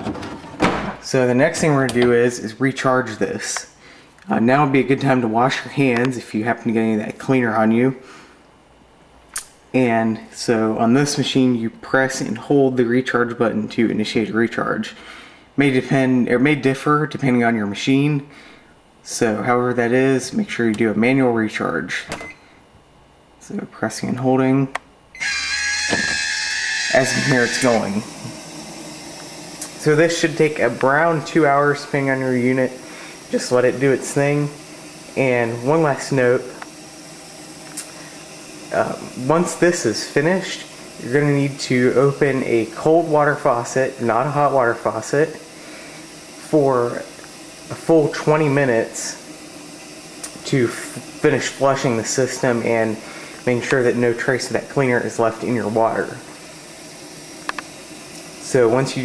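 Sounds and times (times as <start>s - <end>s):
water softener rushing hiss: 0.0s - 8.6s, 9.8s - 22.6s, 24.6s - 59.0s.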